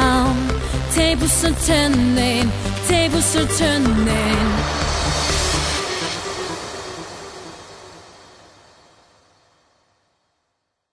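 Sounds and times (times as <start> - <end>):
pop song: 0.0 - 7.6.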